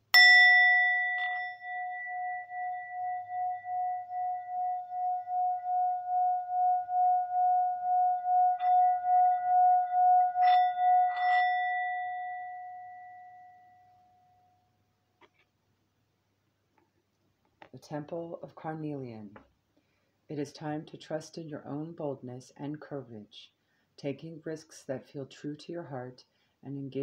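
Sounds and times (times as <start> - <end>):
singing bowl ringing: 0.0 - 14.6.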